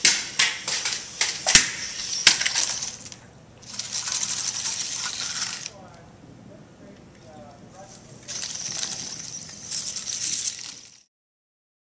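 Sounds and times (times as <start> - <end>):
small electric motors whining: 1.9 - 5.7, 8.2 - 11.0.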